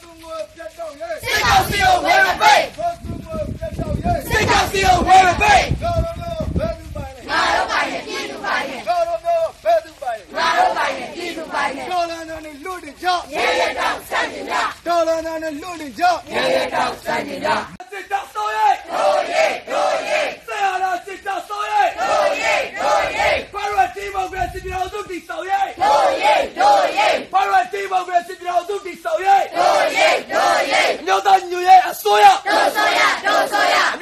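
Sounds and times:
crowd chanting slogans: 0:01.0 - 0:02.9, 0:04.0 - 0:06.0, 0:07.0 - 0:09.5, 0:10.1 - 0:15.0, 0:16.0 - 0:17.8, 0:18.5 - 0:23.8, 0:25.6 - 0:27.7, 0:29.2 - 0:34.0.

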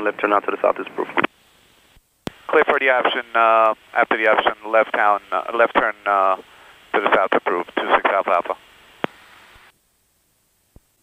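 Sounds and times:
faint radio hiss: 0:00.0 - 0:11.0
radio click: 0:09.0 - 0:09.2.

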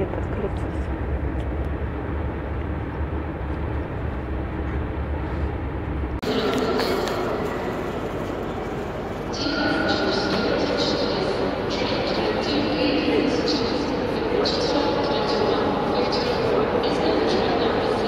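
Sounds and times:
bus engine and road noise: 0:00.0 - 0:10.4
echoing crowd noise: 0:06.2 - 0:18.0.

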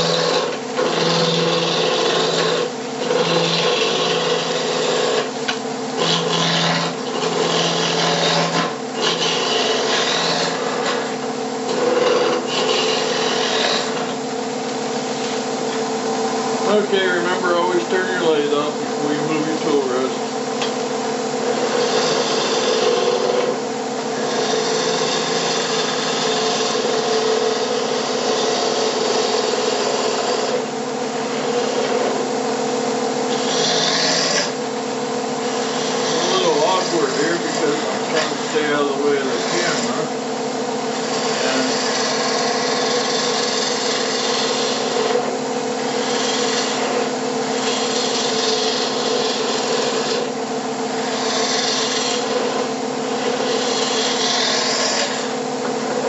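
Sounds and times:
turning tool cutting hiss: 0:00.0 - 0:14.2, 0:21.4 - 0:32.3, 0:33.3 - 0:34.6, 0:35.4 - 0:40.1, 0:40.9 - 0:56.0
wood lathe humming: 0:00.0 - 0:56.0.

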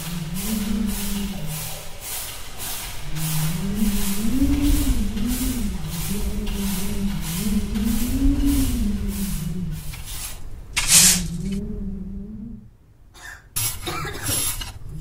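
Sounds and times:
loud hiss: 0:00.0 - 0:11.6
short bursts of noise: 0:00.0 - 0:11.6
rhythmic scrubbing: 0:00.0 - 0:12.1
wavering low hum: 0:00.0 - 0:13.0.

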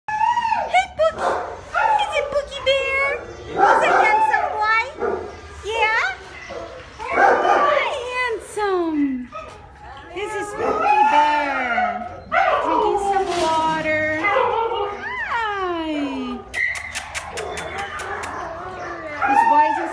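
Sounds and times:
dog howling: 0:10.5 - 0:13.6, 0:14.2 - 0:16.3, 0:17.4 - 0:19.9.

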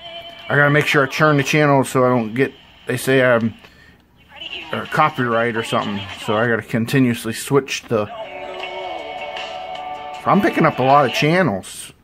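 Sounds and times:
music through small radio speaker: 0:00.0 - 0:06.7, 0:07.8 - 0:12.0.

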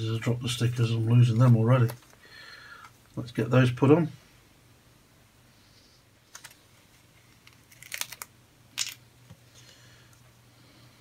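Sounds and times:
plastic clicks and crackles: 0:06.3 - 0:06.6, 0:07.3 - 0:09.4.

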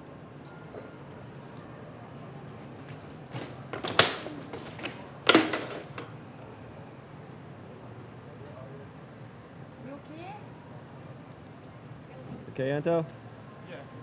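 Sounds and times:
bike hitting hard ground: 0:02.8 - 0:06.1.

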